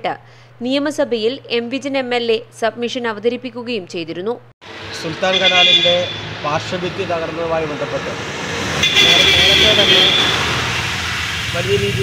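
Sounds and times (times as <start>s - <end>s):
road traffic passing: 4.6s - 12.0s
vehicle engine running: 4.6s - 12.0s
car horn: 4.9s - 6.9s, 8.8s - 10.8s
man speaking: 5.0s - 8.2s, 9.0s - 10.3s, 11.6s - 12.0s.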